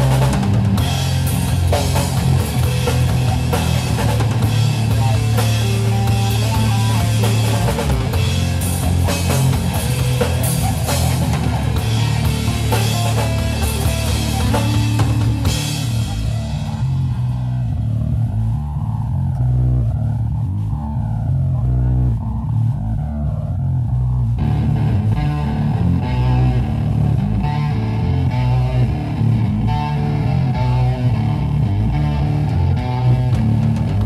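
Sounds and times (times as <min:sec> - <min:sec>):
bass guitar: 0:00.0 - 0:34.0
drums: 0:00.0 - 0:34.0
electric guitar: 0:00.0 - 0:34.0.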